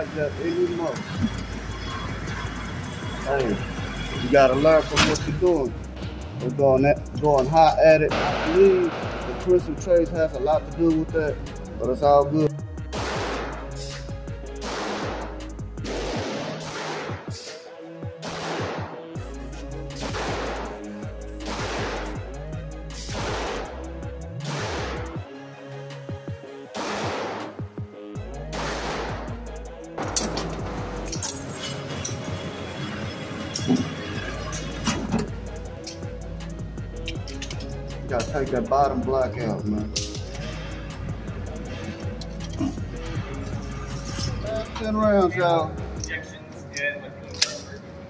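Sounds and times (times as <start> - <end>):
background music: 0.0 - 48.0
pistol shots with echo: 8.1 - 9.8, 14.6 - 17.4, 18.2 - 19.0, 26.8 - 27.6.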